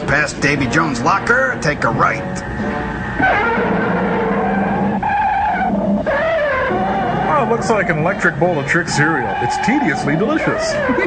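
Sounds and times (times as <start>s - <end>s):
electronic screech: 0.1s - 11.0s.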